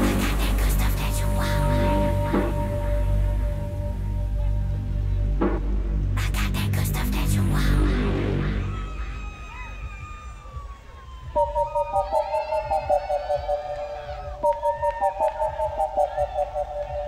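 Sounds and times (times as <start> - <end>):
falling synth tone: 11.4 - 17.0
high synth line: 11.4 - 17.0.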